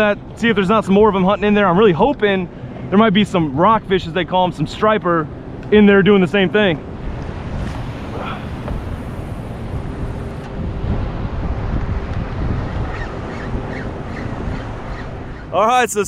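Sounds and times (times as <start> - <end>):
wind buffeting microphone: 0.0 - 16.0
water lapping around kayak: 7.0 - 11.1.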